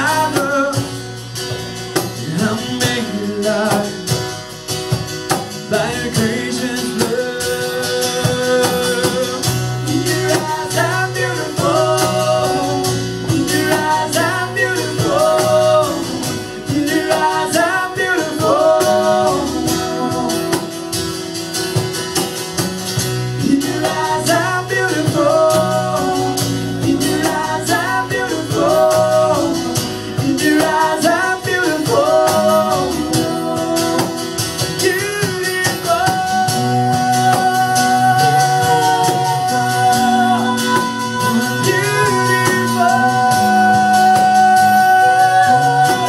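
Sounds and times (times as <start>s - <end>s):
acoustic guitar: 0.0s - 46.0s
person singing: 5.7s - 21.5s, 23.4s - 46.0s.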